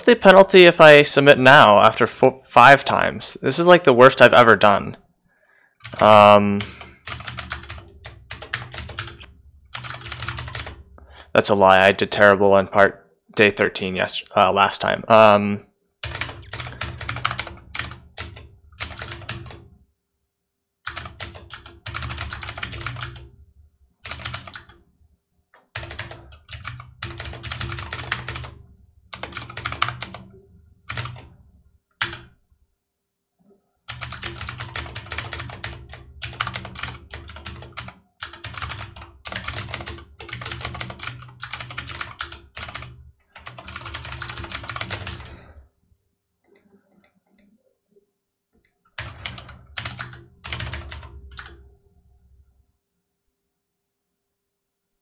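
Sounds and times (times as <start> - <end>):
rapid keyboard typing: 5.8 - 11.0, 16.0 - 19.7, 20.9 - 23.4, 24.0 - 24.9, 25.6 - 31.4, 32.0 - 32.4, 33.9 - 45.6, 48.6 - 51.6.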